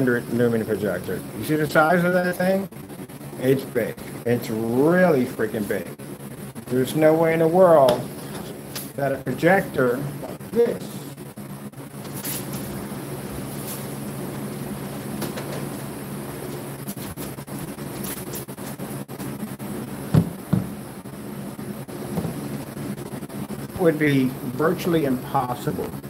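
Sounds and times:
steady background hum: 0.0 - 26.0
knocks on a table: 20.1 - 20.7.

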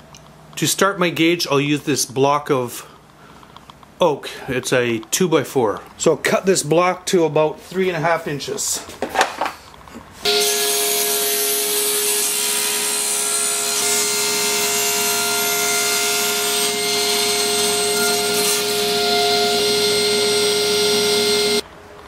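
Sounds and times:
table saw whine: 10.2 - 21.6.

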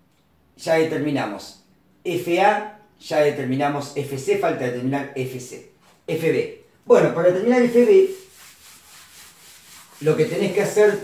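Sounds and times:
eraser rubbing on chalkboard: 7.5 - 11.0.

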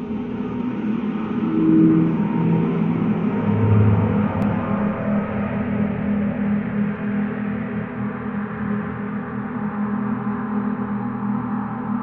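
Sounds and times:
low rumbling drone: 0.0 - 11.8.

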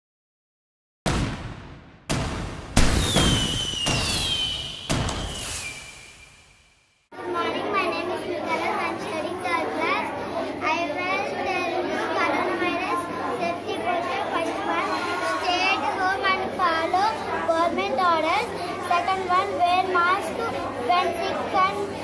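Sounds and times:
children's voices: 7.2 - 22.0
girl talking: 7.2 - 22.0.

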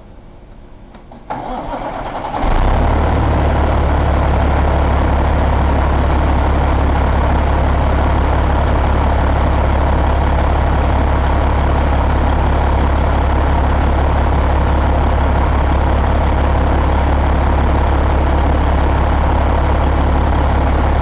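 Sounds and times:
diesel engine starting and idling: 1.1 - 21.0.

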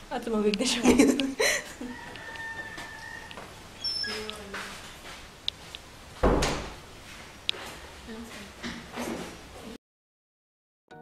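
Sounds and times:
rooster crowing: 1.6 - 3.6.

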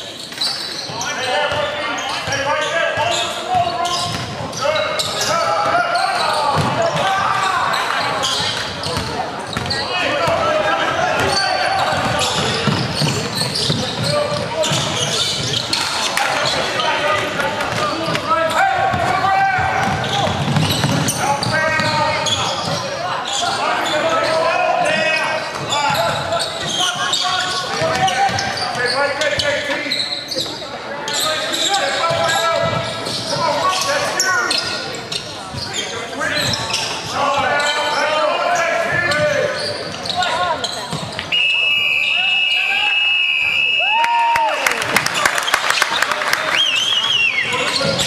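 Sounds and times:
basketball bouncing on hardwood: 19.8 - 22.0.

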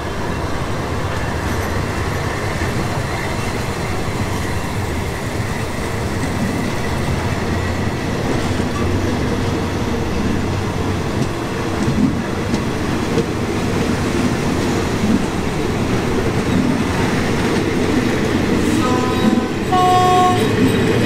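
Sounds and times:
train wheels rumbling and clacking: 0.0 - 21.0
train horn blasts: 18.6 - 20.7.

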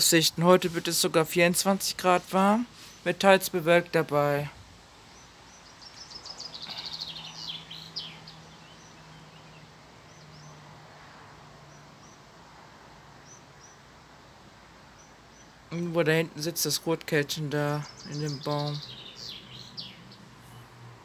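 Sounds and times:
songbird singing: 0.0 - 21.0.

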